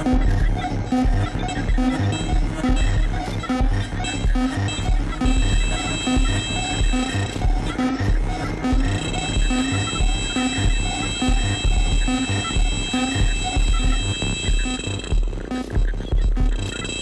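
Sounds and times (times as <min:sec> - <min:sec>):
high-pitched synth tones: 0:00.0 - 0:17.0.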